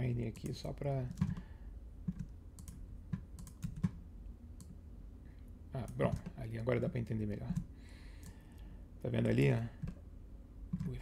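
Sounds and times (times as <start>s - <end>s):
low steady hum: 0.0s - 11.0s
keyboard and mouse clicks: 0.3s - 1.4s, 2.0s - 4.0s, 5.8s - 6.4s, 10.7s - 11.0s.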